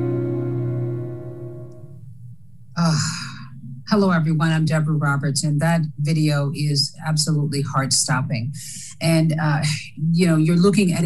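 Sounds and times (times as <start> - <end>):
woman speaking: 2.8 - 11.0.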